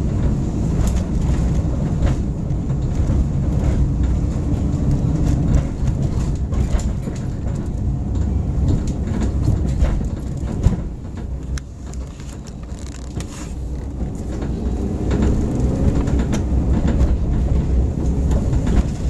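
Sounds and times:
car rolling over rough street: 0.0 - 19.0
knocks and rattles: 0.0 - 19.0.

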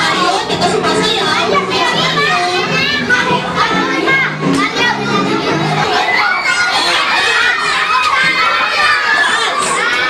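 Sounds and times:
children shouting and chattering: 0.0 - 10.0
music playing: 0.0 - 10.0.

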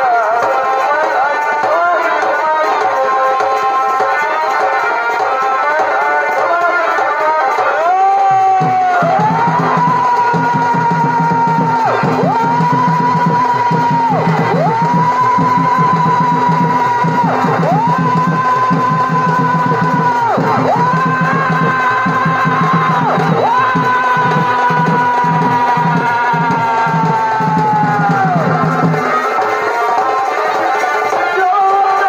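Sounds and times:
rapid drumming: 0.0 - 32.0
reed pipe long high notes: 7.4 - 32.0.

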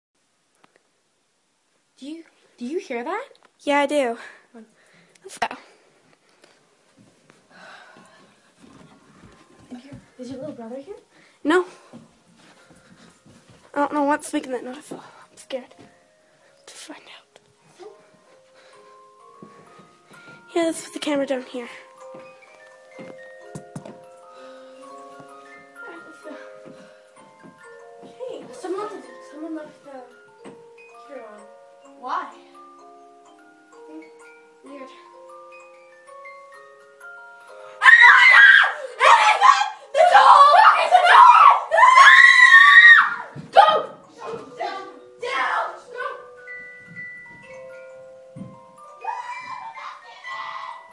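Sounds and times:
faint music of held notes: 2.0 - 50.9
faint tinkling tune: 12.6 - 38.2, 44.0 - 50.9
loud high screaming: 37.8 - 43.4, 49.0 - 50.9.

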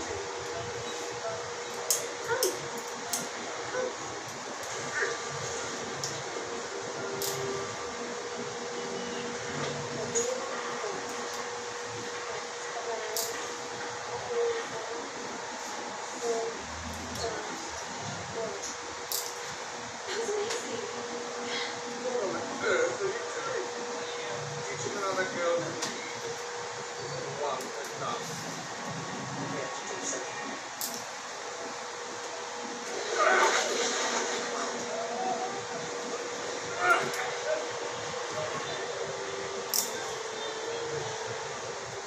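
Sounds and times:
dental equipment hiss and hum: 0.0 - 42.0.

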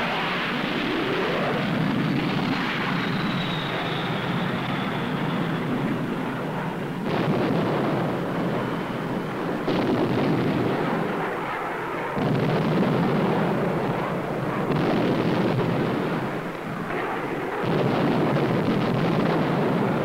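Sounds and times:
continuous rumbling roar: 0.0 - 20.0
faint falling whistle: 2.5 - 5.9
bombs exploding: 7.0 - 8.8, 9.6 - 11.2, 12.2 - 14.0, 14.7 - 20.0.

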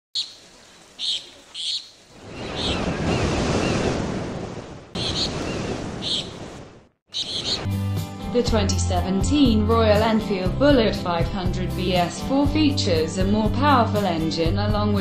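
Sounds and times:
birds chirping: 0.2 - 4.0, 4.9 - 7.8
ocean surf washing in: 2.1 - 7.0
music: 7.6 - 15.0.

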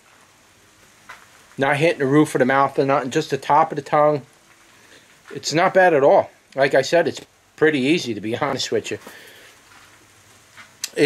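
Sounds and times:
faint hiss: 0.0 - 11.0
man speaking: 1.6 - 4.3, 5.3 - 9.1
mouth click: 10.8 - 11.0.

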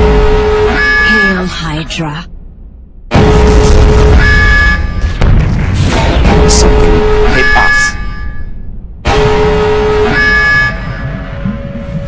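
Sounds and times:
horn blasts: 0.0 - 1.6, 3.1 - 5.2, 6.2 - 12.0
low rumble: 0.0 - 12.0.

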